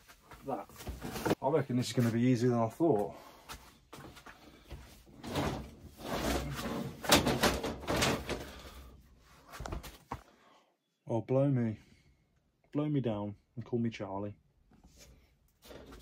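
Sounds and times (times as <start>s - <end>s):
metal shelving scraping and knocking: 4.9s - 8.8s.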